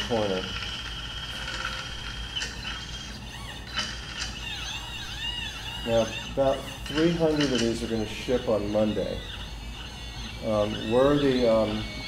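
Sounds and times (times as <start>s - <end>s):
stepper motors whining: 0.0s - 12.0s.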